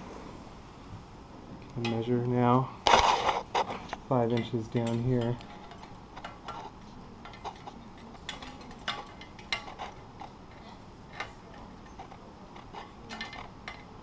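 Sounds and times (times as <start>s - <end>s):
metal brackets clicking and clinking: 3.9s - 14.0s.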